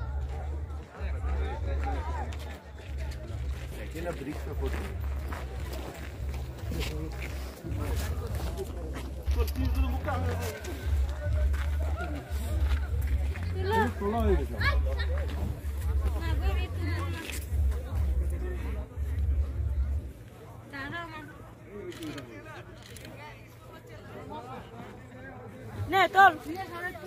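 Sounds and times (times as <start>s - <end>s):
people talking faintly: 0.0s - 27.0s.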